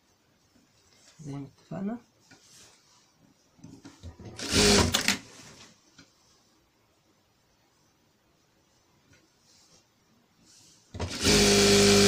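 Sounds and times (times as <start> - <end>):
sewing machine stitching: 4.2 - 5.2, 11.0 - 12.0.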